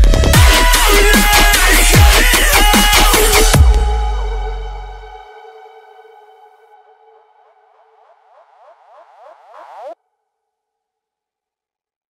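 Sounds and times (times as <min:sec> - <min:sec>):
electronic dance track: 0:00.1 - 0:03.9
rising synth sweeps: 0:06.2 - 0:10.0.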